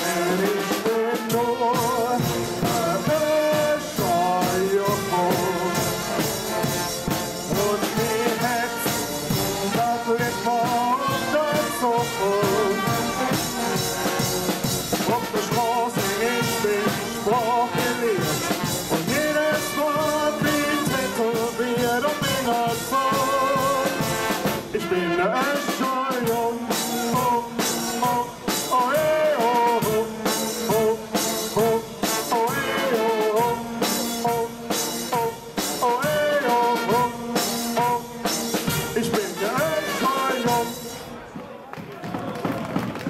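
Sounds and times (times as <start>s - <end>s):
brass band playing: 0.0s - 41.5s
voices singing along: 0.0s - 41.5s
drums keeping a steady beat: 0.0s - 43.0s.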